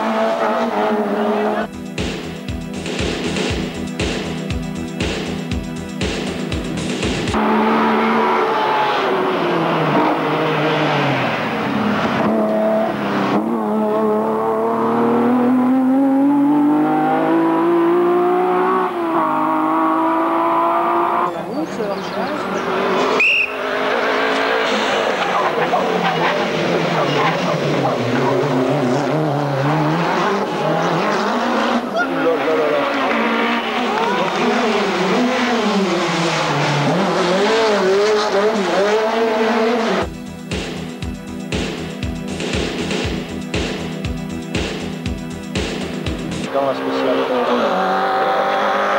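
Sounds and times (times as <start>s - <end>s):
rally car engines revving: 0.0s - 48.9s.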